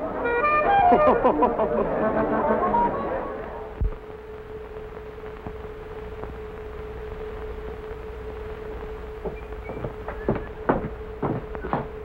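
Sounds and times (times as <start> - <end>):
film soundtrack hum and hiss: 0.0 - 12.0.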